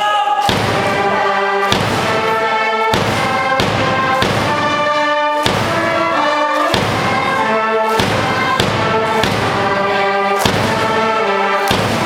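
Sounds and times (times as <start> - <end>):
wind and brass march tune: 0.0 - 12.0
heavy drum thumps: 0.5 - 12.0.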